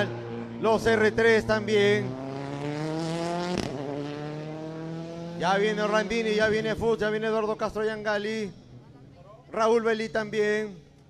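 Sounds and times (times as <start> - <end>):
rally car engine accelerating: 0.0 - 7.3.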